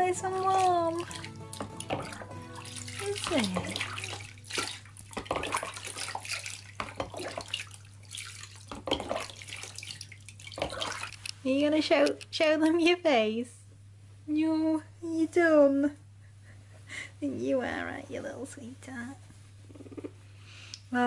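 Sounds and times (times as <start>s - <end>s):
water pouring and splashing: 0.0s - 11.3s.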